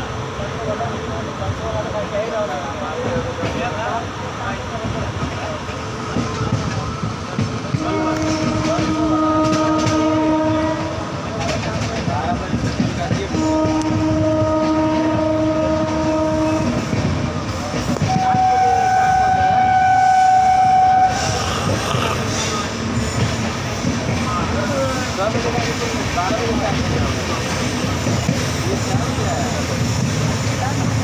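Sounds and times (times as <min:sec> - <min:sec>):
train wheels clattering over rails: 0:01.4 - 0:31.0
locomotive horn blasts: 0:07.7 - 0:11.2, 0:13.3 - 0:16.9, 0:18.0 - 0:21.5.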